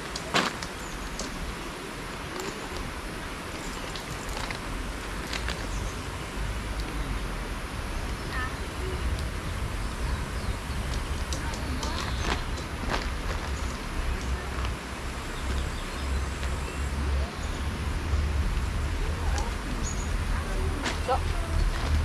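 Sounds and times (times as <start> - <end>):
wind rumble on microphone: 0.0 - 22.0.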